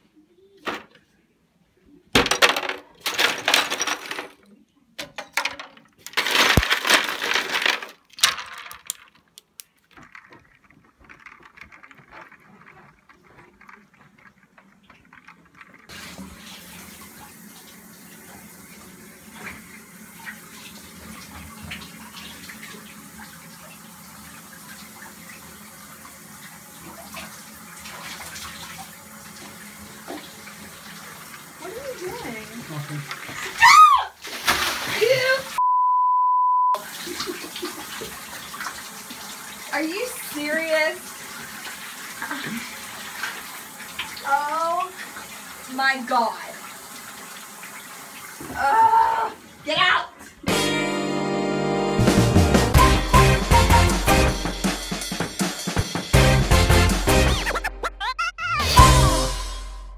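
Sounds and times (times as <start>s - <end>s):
ice cubes clattering into pitcher: 2.2s - 4.5s, 5.1s - 16.1s
shower water spraying into tub: 13.2s - 35.6s, 36.8s - 50.5s.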